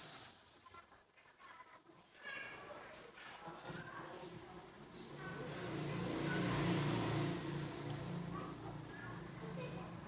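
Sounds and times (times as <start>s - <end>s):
motor vehicle passing by: 5.2s - 10.0s.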